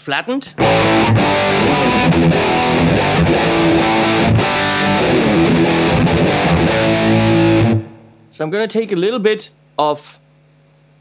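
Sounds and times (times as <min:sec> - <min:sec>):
overdriven electric guitar: 0:00.6 - 0:08.2.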